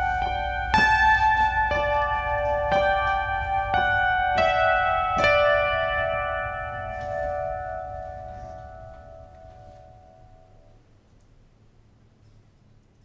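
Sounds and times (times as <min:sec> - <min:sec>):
piano and ukulele chord ringing: 0:00.0 - 0:10.6
faint low hum: 0:00.0 - 0:13.0.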